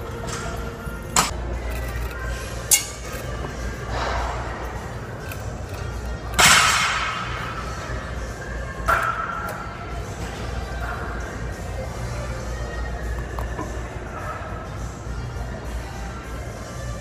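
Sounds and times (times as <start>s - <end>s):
faint music: 0.0s - 17.0s
gym background noise: 0.0s - 17.0s.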